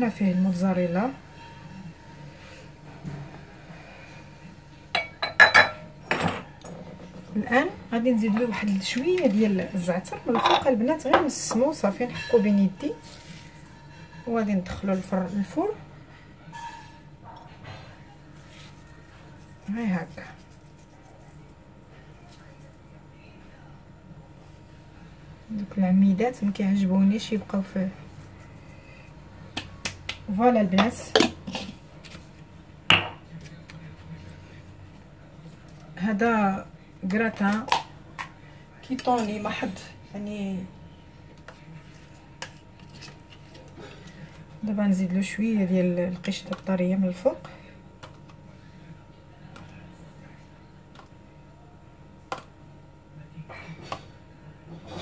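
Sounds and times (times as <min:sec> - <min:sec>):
woman speaking: 0:00.0 - 0:01.2, 0:07.3 - 0:13.3, 0:14.1 - 0:15.8, 0:19.6 - 0:20.4, 0:25.5 - 0:28.2, 0:30.2 - 0:31.8, 0:36.0 - 0:37.8, 0:38.8 - 0:40.8, 0:44.6 - 0:47.7.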